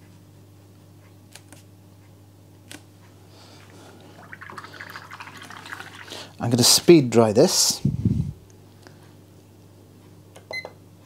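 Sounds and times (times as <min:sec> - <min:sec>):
low steady hum: 0:00.0 - 0:11.0
paintbrush rinsed in water pot: 0:03.6 - 0:06.6.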